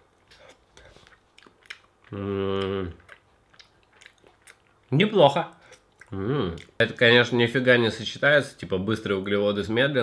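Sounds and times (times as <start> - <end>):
man chewing: 0.0 - 5.0, 5.6 - 6.8
man humming mmm: 2.1 - 3.0, 6.1 - 6.6.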